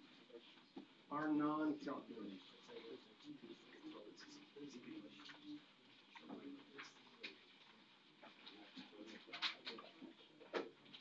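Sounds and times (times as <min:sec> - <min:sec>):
scattered clicks and rustles: 0:02.3 - 0:11.0.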